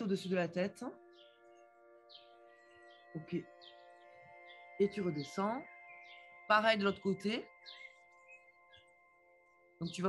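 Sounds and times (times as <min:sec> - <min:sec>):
faint bird chirps: 0:00.0 - 0:10.0
soft sustained chord music: 0:00.0 - 0:10.0.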